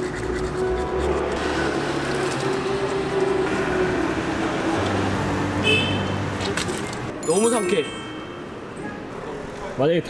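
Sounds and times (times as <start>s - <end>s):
toothbrush scrubbing teeth: 0.0s - 1.4s
low rumble of street traffic: 0.0s - 10.0s.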